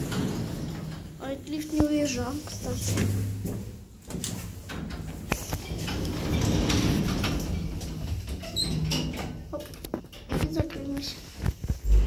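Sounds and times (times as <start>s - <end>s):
elevator sliding doors running: 0.0s - 10.6s.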